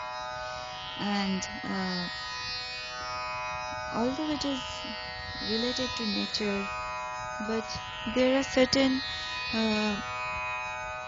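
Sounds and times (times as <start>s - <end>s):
indian classical drone music: 0.0s - 11.0s.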